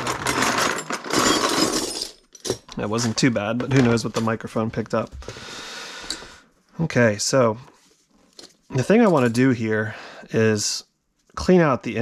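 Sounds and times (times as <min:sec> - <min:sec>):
metal keys clattering onto wood: 0:00.0 - 0:02.8.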